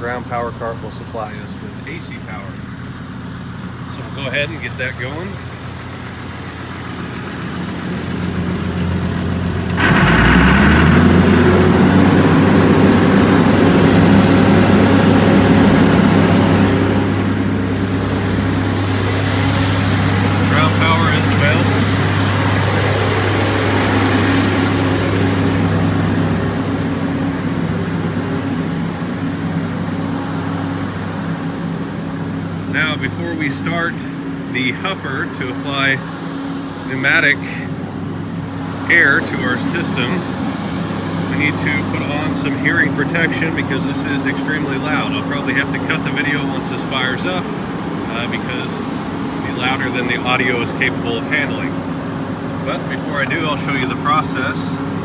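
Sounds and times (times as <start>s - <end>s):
diesel engine starting and revving: 0.0s - 55.0s.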